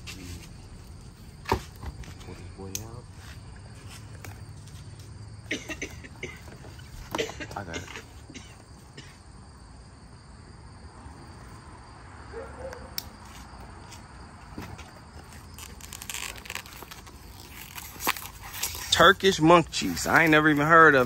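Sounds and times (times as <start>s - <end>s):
high insect drone: 0.0s - 21.0s.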